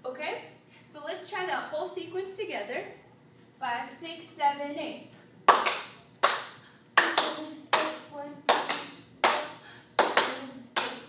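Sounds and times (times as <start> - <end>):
hands clapping to a beat: 5.5 - 11.0.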